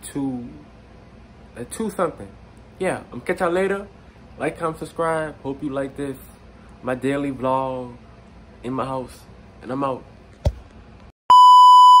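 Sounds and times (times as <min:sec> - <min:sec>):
steady test-tone beep: 0:11.3 - 0:12.0.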